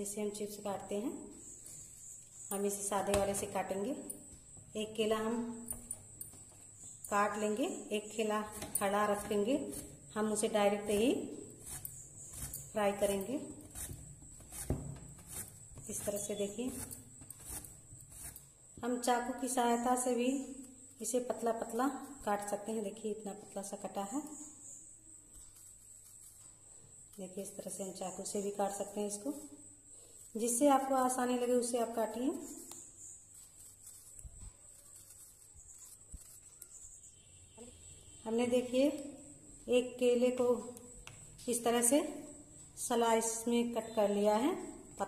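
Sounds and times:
banana scraping on grater: 0:09.2 - 0:18.5.

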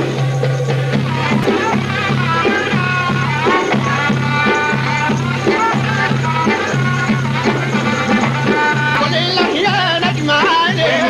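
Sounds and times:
folk music with ornamented melody: 0:00.0 - 0:11.0.

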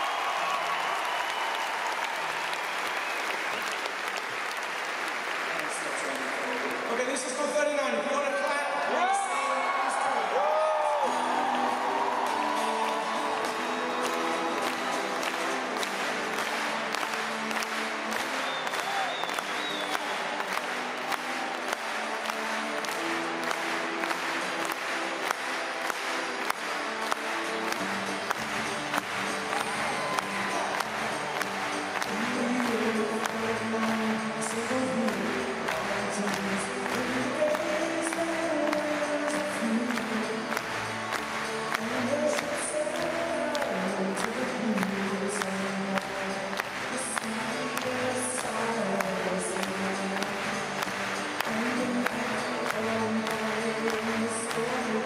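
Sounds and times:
crowd cheering and whooping: 0:00.0 - 0:04.3, 0:08.8 - 0:16.6, 0:18.2 - 0:22.8, 0:28.9 - 0:33.5.

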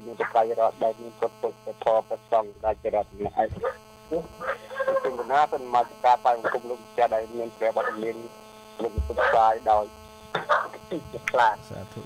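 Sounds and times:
electrical mains hum: 0:00.0 - 0:12.0
man speaking: 0:00.0 - 0:12.0.

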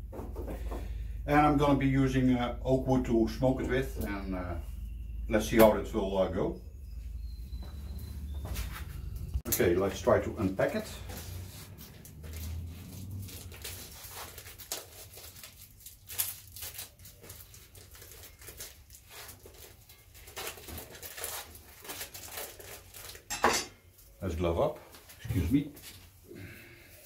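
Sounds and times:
plastic crinkling and tearing: 0:11.3 - 0:23.3.

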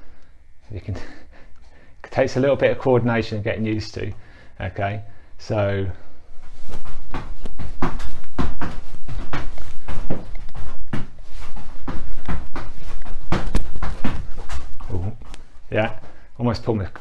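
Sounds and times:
trainers thudding on exercise mat: 0:06.8 - 0:15.1.

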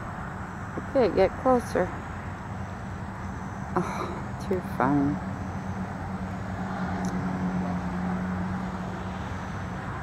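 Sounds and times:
low mechanical hum: 0:00.0 - 0:10.0
outdoor background noise: 0:00.0 - 0:10.0.

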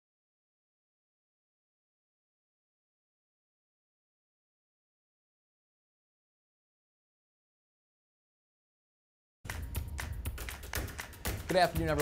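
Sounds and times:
low bass: 0:09.5 - 0:12.0
news theme music: 0:09.5 - 0:12.0
sharp percussive hits: 0:09.5 - 0:12.0.

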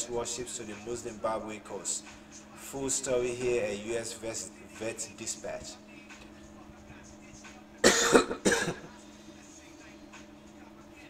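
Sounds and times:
faint steady hum: 0:00.0 - 0:11.0
man coughing: 0:07.8 - 0:09.0.

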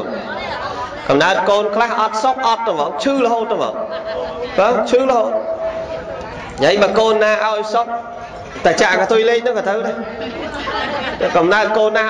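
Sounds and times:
man preaching into a microphone: 0:00.0 - 0:00.3, 0:01.1 - 0:05.7, 0:06.6 - 0:10.2, 0:11.2 - 0:12.0.

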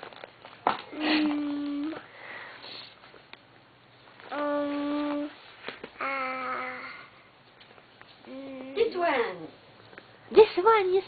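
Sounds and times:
person saying um: 0:00.9 - 0:02.0
person sniffing: 0:02.2 - 0:03.0.

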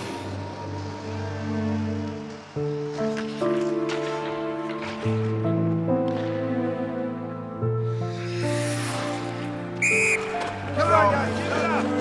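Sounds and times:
referee's whistle blast: 0:09.8 - 0:10.4.

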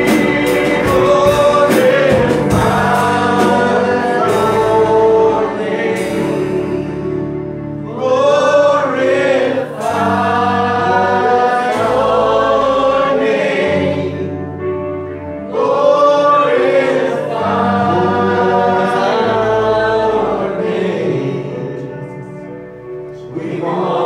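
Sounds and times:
sustained bass line: 0:00.0 - 0:08.7
keyboard: 0:00.0 - 0:24.0.

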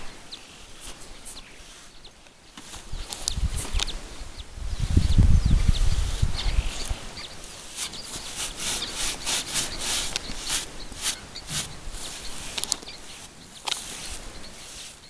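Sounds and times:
brush rubbing horse's coat: 0:00.4 - 0:02.0, 0:06.0 - 0:15.0.

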